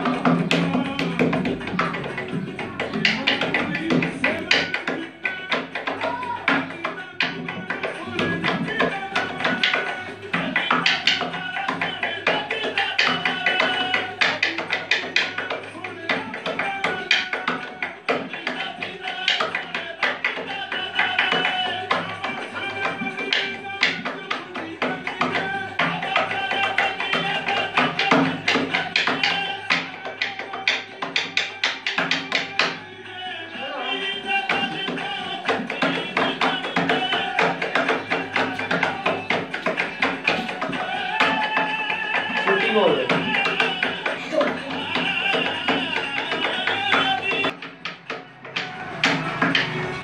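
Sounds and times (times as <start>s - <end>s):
rhythmic hand clap music: 0.0s - 50.0s.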